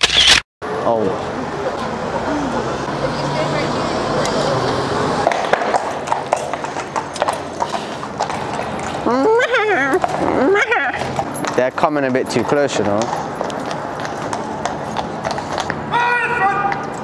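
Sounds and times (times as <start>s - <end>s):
horse hooves clip-clopping: 5.2s - 15.9s.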